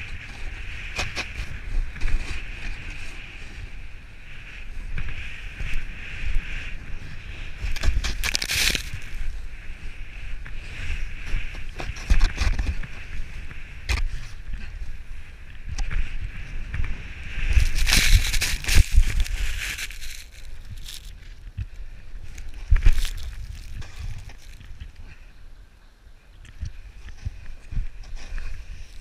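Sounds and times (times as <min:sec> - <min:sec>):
snowboard sliding over snow: 0:00.0 - 0:24.9, 0:27.1 - 0:29.0
wind rumble on microphone: 0:00.0 - 0:29.0.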